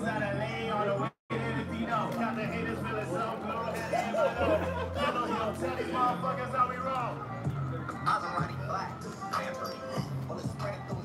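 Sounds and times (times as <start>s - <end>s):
people talking: 0.0s - 10.7s.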